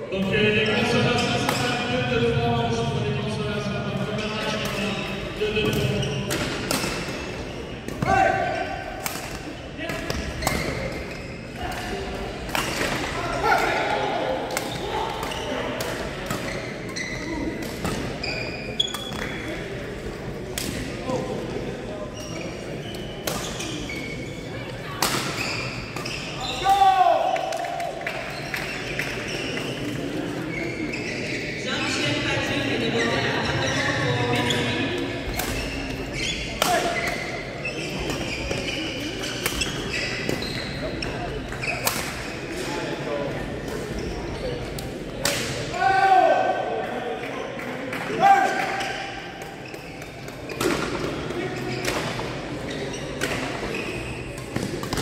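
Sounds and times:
players' voices: 0:00.0 - 0:55.0
shoes squeaking on court floor: 0:04.2 - 0:08.2, 0:09.4 - 0:13.6, 0:14.5 - 0:19.8, 0:22.0 - 0:26.8, 0:28.0 - 0:42.6, 0:43.4 - 0:44.9, 0:48.6 - 0:55.0.

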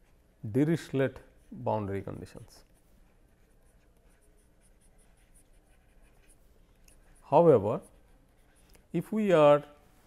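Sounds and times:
stylus scratching on pen tablet: 0:00.0 - 0:09.4.

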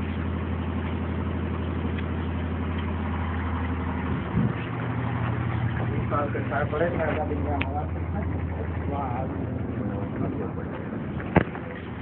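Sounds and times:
low steady hum: 0:00.0 - 0:12.0
men talking indistinctly: 0:05.8 - 0:12.0.

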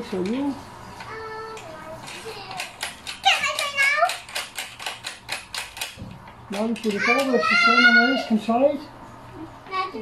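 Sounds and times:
rapid clicking of clamp tightening: 0:01.6 - 0:07.0.

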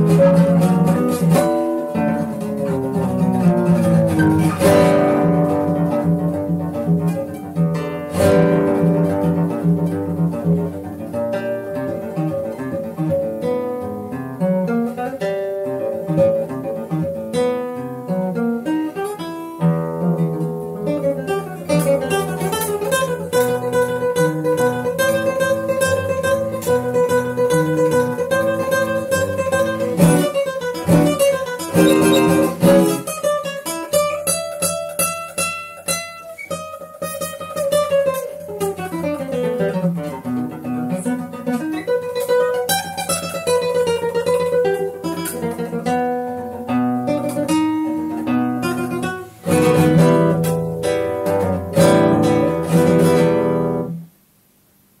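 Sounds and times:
solo classical guitar: 0:00.0 - 0:55.0.

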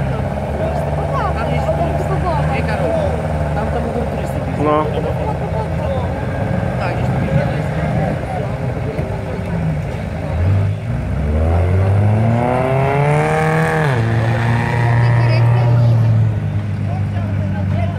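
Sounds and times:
vehicle engine revving: 0:00.0 - 0:17.9.

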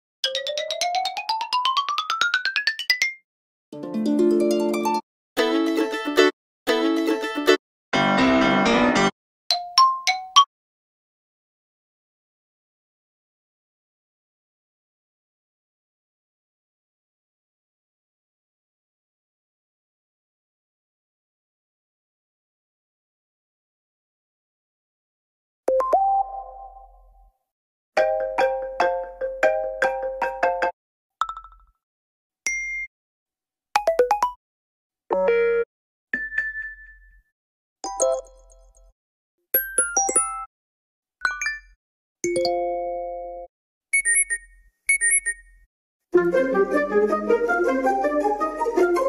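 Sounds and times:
phone ringtone chiming notes: 0:39.6 - 0:40.5, 0:42.3 - 0:45.5.

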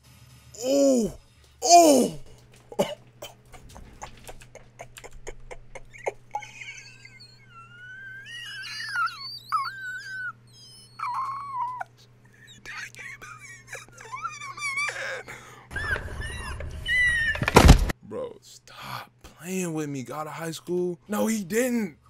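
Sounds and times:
man squealing with excitement: 0:00.6 - 0:02.2, 0:06.5 - 0:11.9, 0:14.0 - 0:17.6.

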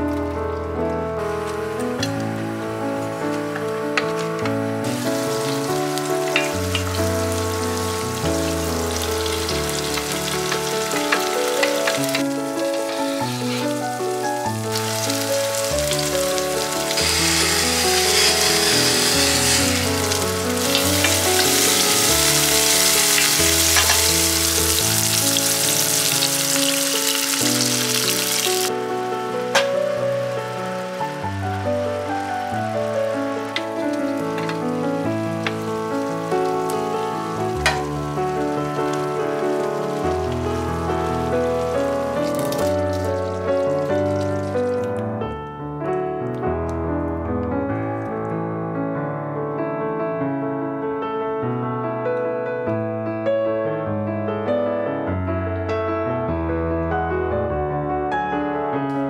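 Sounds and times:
background music: 0:00.0 - 0:45.3
food sizzling in a frying pan: 0:01.2 - 0:44.9
wooden spoon stirring: 0:14.7 - 0:25.1.

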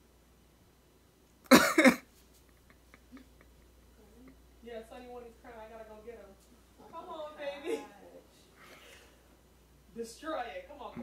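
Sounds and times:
man laughing: 0:02.6 - 0:03.7.

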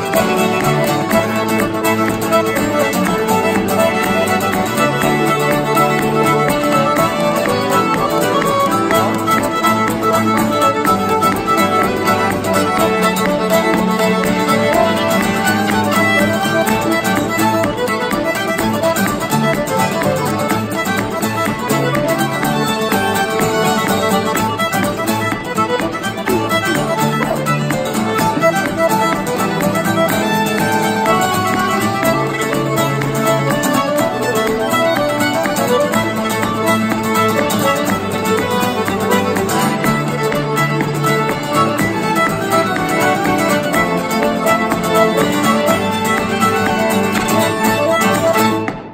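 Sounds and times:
acoustic guitar: 0:00.0 - 0:48.9
fiddle melody: 0:00.0 - 0:48.9
piano accordion: 0:00.0 - 0:48.9.

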